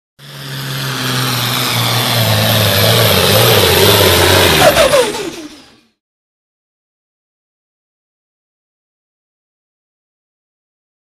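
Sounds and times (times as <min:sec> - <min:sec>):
tractor diesel engine at full throttle: 0:00.2 - 0:06.0.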